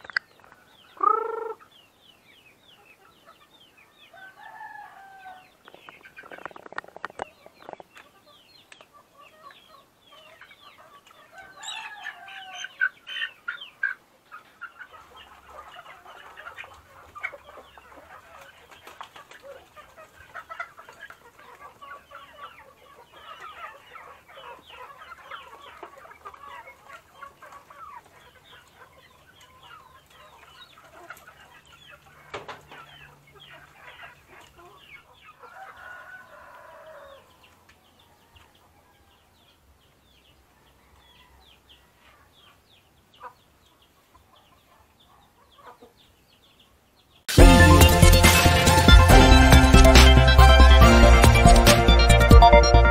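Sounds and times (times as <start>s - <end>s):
chickens clucking: 0.0s - 52.9s.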